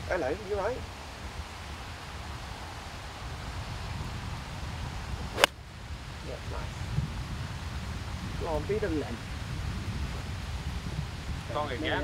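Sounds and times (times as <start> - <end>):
low steady background hiss: 0.0 - 12.0
golf club striking ball: 5.4 - 5.6.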